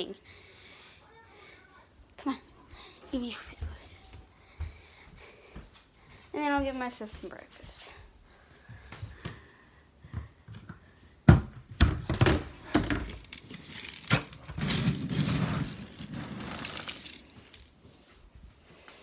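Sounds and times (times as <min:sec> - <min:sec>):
knocks and thuds: 0:11.3 - 0:13.1
crinkling rustle: 0:13.0 - 0:18.3.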